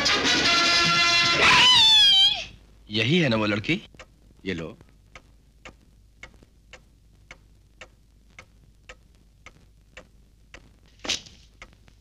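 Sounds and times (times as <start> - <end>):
clock ticking: 3.4 - 12.0.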